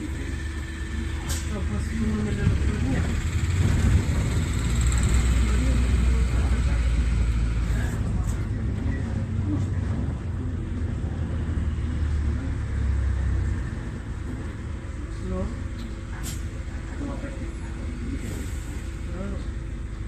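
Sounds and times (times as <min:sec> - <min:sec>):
engine and road rumble: 0:00.0 - 0:20.0.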